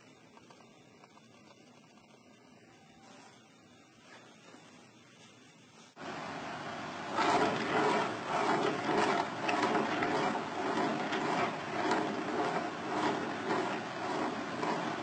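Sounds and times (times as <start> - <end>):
balls rolling on tracks: 6.0 - 15.0.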